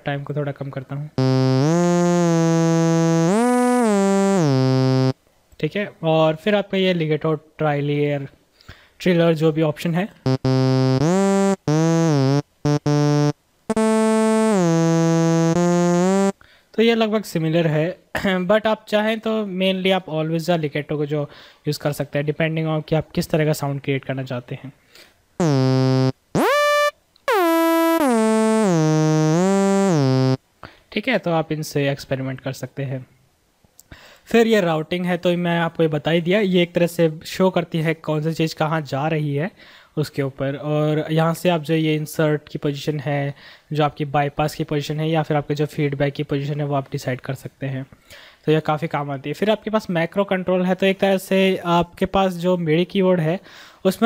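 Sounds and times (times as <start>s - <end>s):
synthesizer note gliding up: 1.2s - 5.1s, 10.3s - 16.3s, 25.4s - 30.4s.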